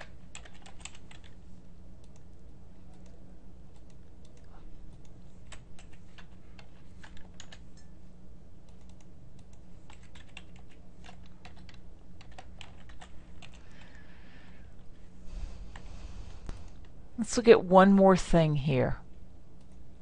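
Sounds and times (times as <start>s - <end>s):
keyboard typing clicks: 0.0s - 1.4s, 2.0s - 2.3s, 2.9s - 7.6s, 8.6s - 14.0s
steady low hum: 0.0s - 20.0s.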